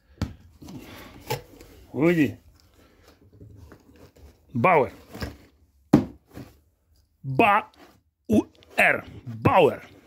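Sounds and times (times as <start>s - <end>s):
cardboard box thump: 5.2s - 6.6s.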